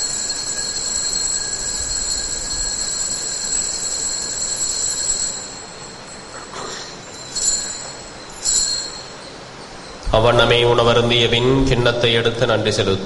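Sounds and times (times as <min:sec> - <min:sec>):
altar bells ringing: 0:00.0 - 0:11.2.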